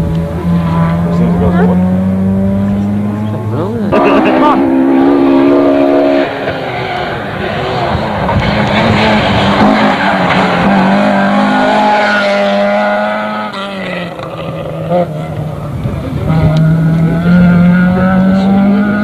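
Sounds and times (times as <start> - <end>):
rally car engines at high revs: 0.0 - 19.0.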